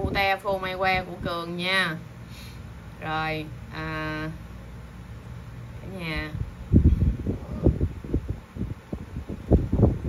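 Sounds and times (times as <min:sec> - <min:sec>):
wind buffeting a microphone: 0:00.0 - 0:01.8, 0:05.9 - 0:10.0.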